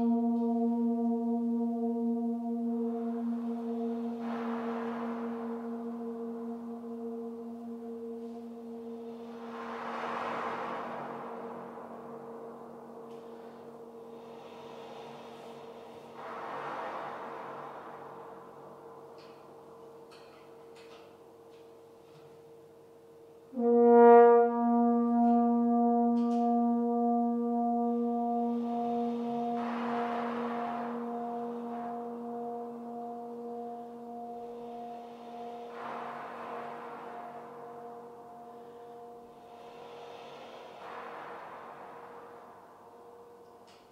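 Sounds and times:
french horn low reverberant note: 0.0s - 43.9s
rushing breath sound: 8.9s - 20.0s, 34.6s - 43.9s.

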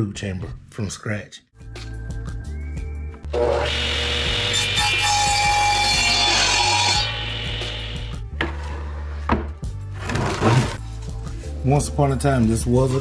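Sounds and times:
radial arm saw cutting wood: 3.3s - 8.2s.

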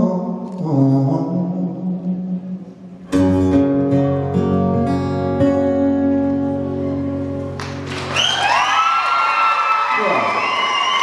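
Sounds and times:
man singing long notes: 0.0s - 3.0s
acoustic guitar: 0.0s - 8.4s.

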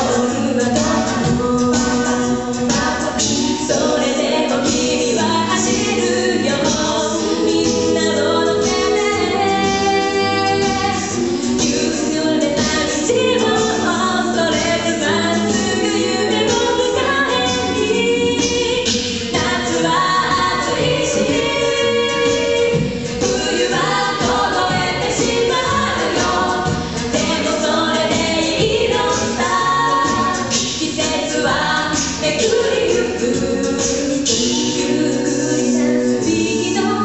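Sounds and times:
a cappella group singing: 0.0s - 37.0s.

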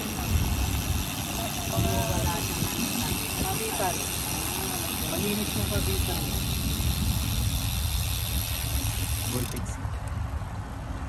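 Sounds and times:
bicycle freewheel buzz: 0.0s - 9.7s
wind rumbling on microphone: 0.0s - 11.0s.

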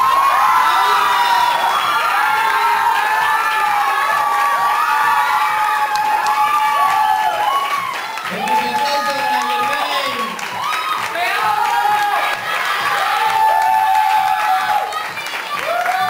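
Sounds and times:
audience cheering and screaming: 0.0s - 16.0s.

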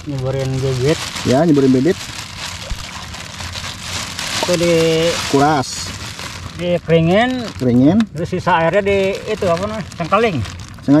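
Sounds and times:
plastic bag crinkling in water: 0.0s - 11.0s.

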